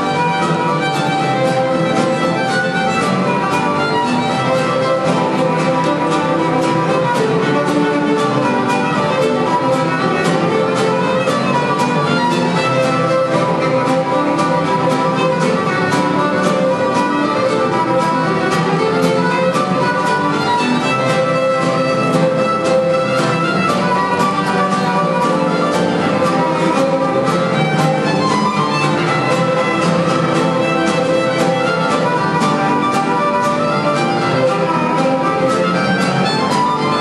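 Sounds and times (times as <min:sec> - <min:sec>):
acoustic guitar strumming: 0:00.0 - 0:37.0
fast fiddle tune: 0:00.0 - 0:37.0.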